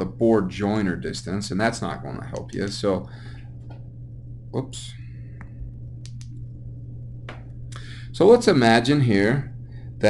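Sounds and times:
steady low hum: 0.0 - 10.0
short breath: 3.1 - 3.5, 7.8 - 8.1.

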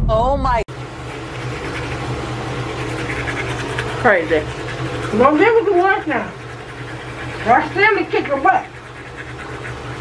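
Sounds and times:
steady low hum: 0.0 - 10.0
toothbrush scrubbing teeth: 0.8 - 10.0.

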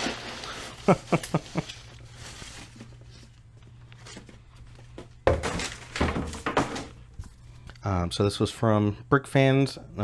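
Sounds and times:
plastic bags of pieces clattering: 0.0 - 3.2, 5.3 - 7.0.

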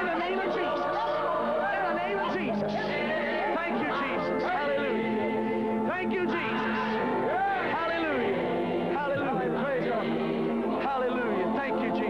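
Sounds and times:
crowd shouting: 0.0 - 5.0, 6.0 - 8.4
background music with held notes: 0.0 - 12.0.

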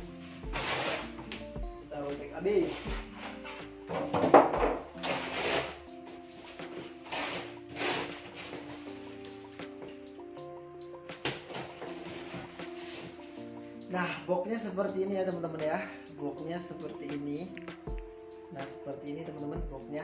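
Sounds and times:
background music: 0.0 - 20.0
rustling and knocking of packaging: 0.2 - 1.5, 2.7 - 10.0, 11.2 - 13.4.

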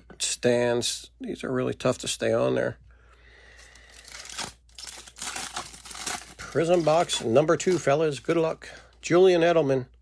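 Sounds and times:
plastic packaging tearing: 3.8 - 8.4
wrapper crinkling: 3.8 - 8.7.

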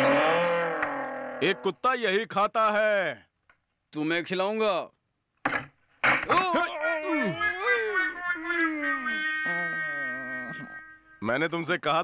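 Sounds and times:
man wailing: 6.3 - 11.0.

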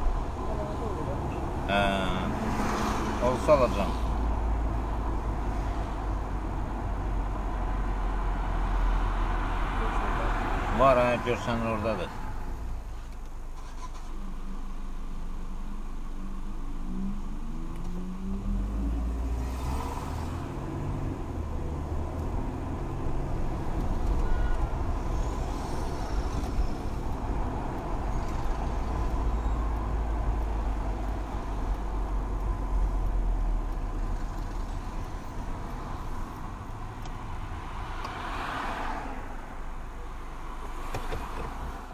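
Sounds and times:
car engine and road noise: 0.0 - 41.9.

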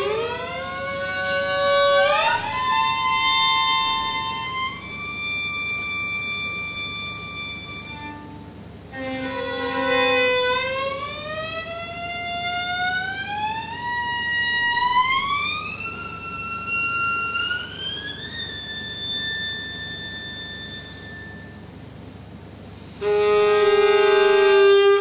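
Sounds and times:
violin note sliding upward: 0.0 - 21.6.

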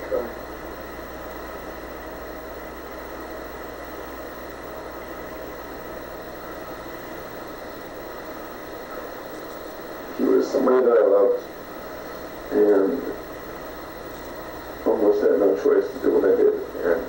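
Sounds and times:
tape hiss: 0.0 - 17.0.

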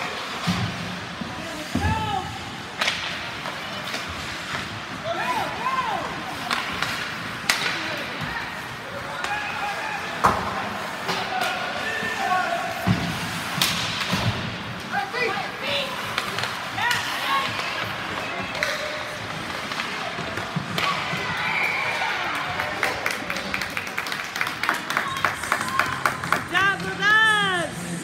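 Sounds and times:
ice rink noise: 0.0 - 28.0
spectators talking and calling out: 24.7 - 28.0.

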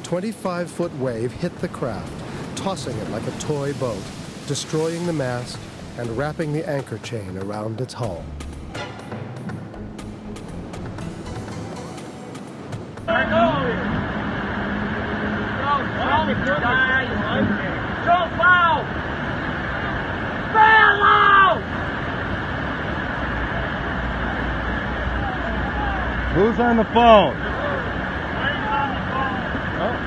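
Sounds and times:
water rushing over dam: 0.0 - 9.0, 13.1 - 30.0
people shouting: 20.5 - 21.6, 25.1 - 26.2.

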